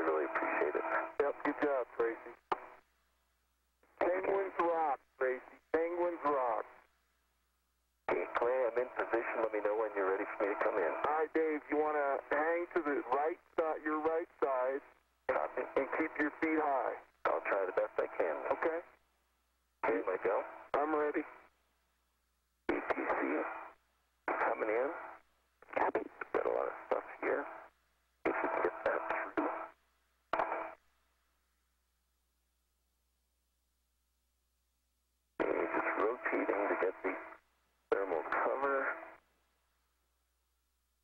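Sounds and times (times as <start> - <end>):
narrow-band radio speech: 0.0 - 2.7, 4.0 - 6.8, 8.1 - 19.0, 19.8 - 21.4, 22.7 - 23.6, 24.3 - 29.7, 35.4 - 39.2.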